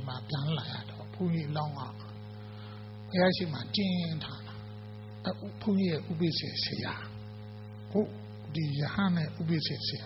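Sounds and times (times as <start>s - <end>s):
man speaking: 0.0s - 2.2s, 3.1s - 7.2s, 7.9s - 10.0s
electrical mains hum: 0.0s - 10.0s.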